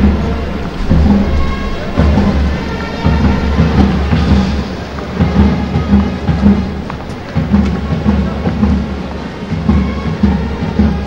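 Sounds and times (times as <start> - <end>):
faint music: 0.0 - 11.0
heavy low rumble: 0.0 - 11.0
rain: 0.0 - 11.0.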